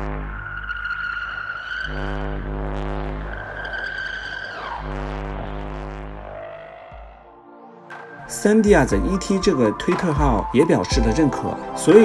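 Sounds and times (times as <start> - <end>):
high whistle-like electronic tone: 0.0 - 7.2
low electronic humming drone: 0.0 - 12.0.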